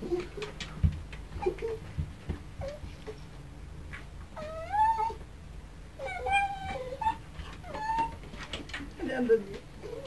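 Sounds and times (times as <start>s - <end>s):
dog whining: 1.4s - 1.8s, 2.6s - 3.1s, 4.4s - 5.2s, 6.0s - 8.3s, 9.8s - 10.0s.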